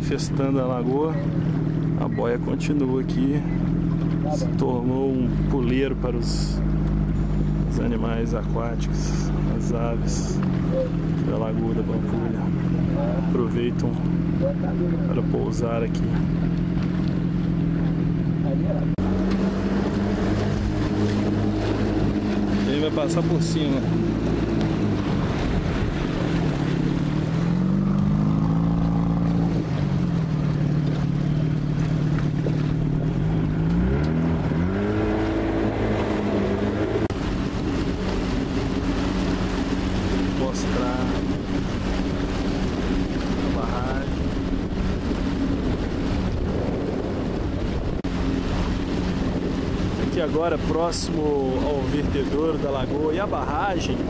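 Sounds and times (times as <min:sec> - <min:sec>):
boat motor humming: 0:00.0 - 0:54.0
water rushing: 0:00.0 - 0:54.0
wind noise on microphone: 0:34.2 - 0:50.3.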